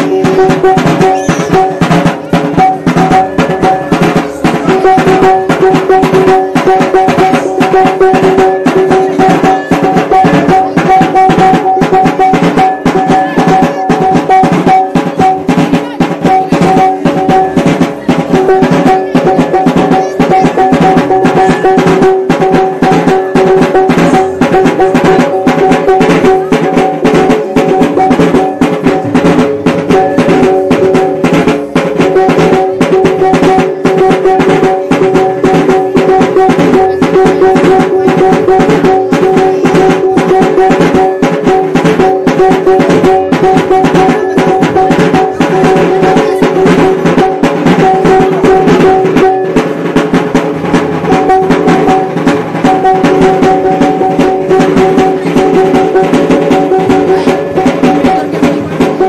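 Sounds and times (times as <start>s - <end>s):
large drum beaten rapidly: 0.0s - 59.0s.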